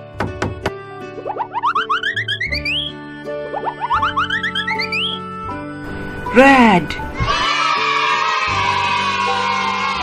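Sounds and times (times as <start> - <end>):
children's music backing: 0.0 - 10.0
cartoon rising note run: 1.2 - 5.2.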